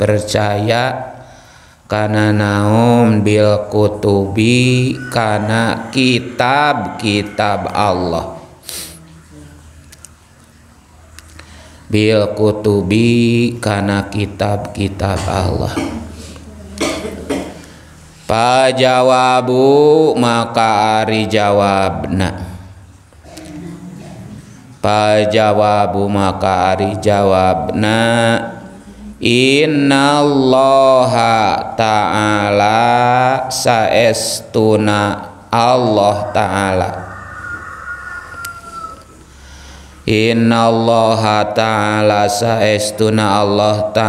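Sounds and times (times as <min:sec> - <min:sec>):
distant animal call: 0:04.4 - 0:08.5, 0:35.8 - 0:40.0
person coughing: 0:15.2 - 0:17.8.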